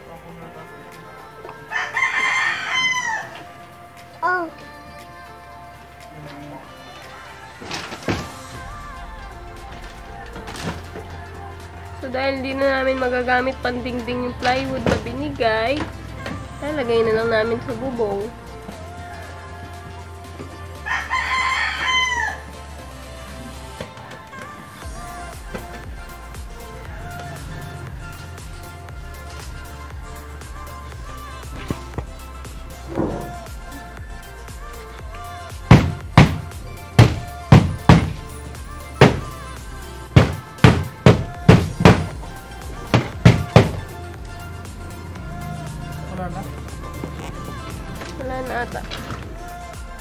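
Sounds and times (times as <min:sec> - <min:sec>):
quiet background music: 0:00.0 - 0:50.0
rooster crowing: 0:01.6 - 0:04.0, 0:19.1 - 0:23.7
hammering on wood: 0:35.6 - 0:38.4, 0:39.0 - 0:39.4, 0:40.1 - 0:44.4.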